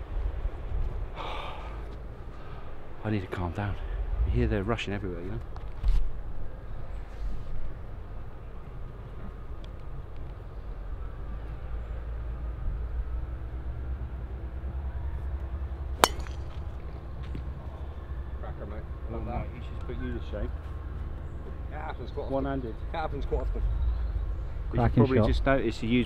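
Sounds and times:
golf club striking ball: 16.0s - 17.0s.

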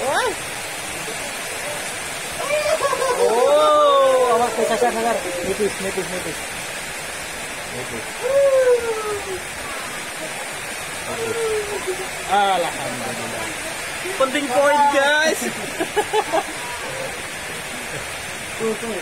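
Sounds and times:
rain hissing: 0.0s - 19.0s
man calling wordlessly: 14.0s - 15.6s.

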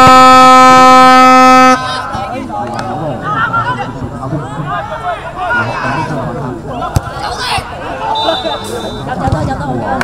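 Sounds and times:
air horn blast: 0.0s - 2.0s.

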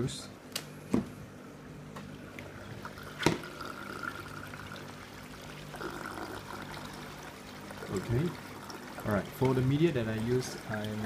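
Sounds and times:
water trickling and pouring: 2.4s - 11.0s.

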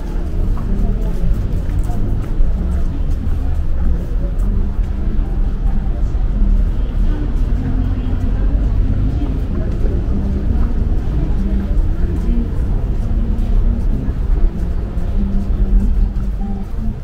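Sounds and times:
low street rumble: 0.0s - 17.0s
people talking indistinctly: 0.0s - 17.0s.

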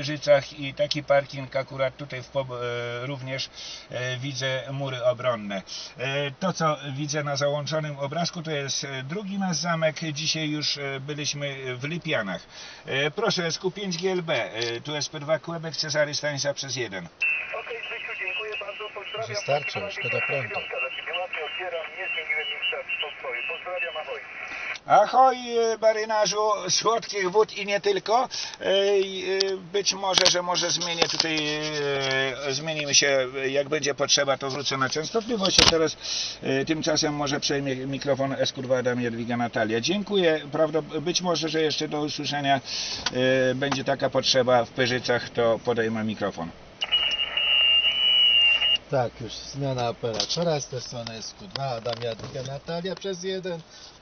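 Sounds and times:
radio hiss: 2.7s - 6.3s, 8.4s - 45.8s, 46.8s - 49.9s
voice over radio loudspeaker: 17.2s - 25.0s
faint high whistle: 46.8s - 48.8s.

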